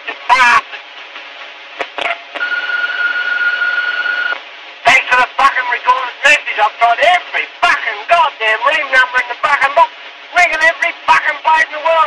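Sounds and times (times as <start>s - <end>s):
telephone line hiss: 2.0s - 5.0s.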